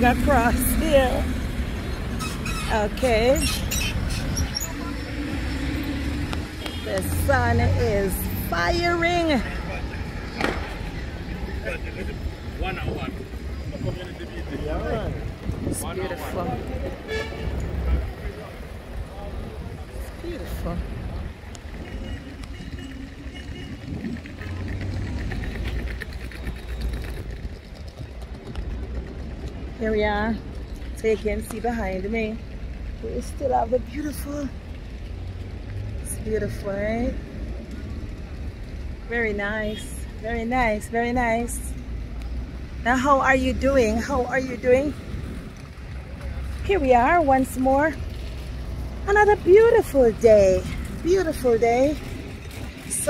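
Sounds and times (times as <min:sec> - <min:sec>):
woman speaking: 0:00.0 - 0:01.3, 0:02.7 - 0:03.6, 0:06.8 - 0:09.4, 0:29.8 - 0:30.4, 0:33.0 - 0:34.5, 0:39.1 - 0:41.7, 0:42.9 - 0:45.0, 0:46.6 - 0:48.0, 0:49.0 - 0:52.0
distant traffic: 0:00.0 - 0:53.0
wind on microphone: 0:12.6 - 0:17.3, 0:20.6 - 0:29.8.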